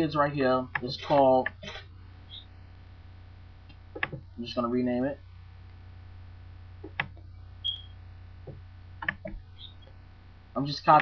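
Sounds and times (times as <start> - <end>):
low electrical hum: 0.0 - 11.0
computer mouse clicks: 3.7 - 4.2, 6.8 - 7.8, 9.0 - 9.8.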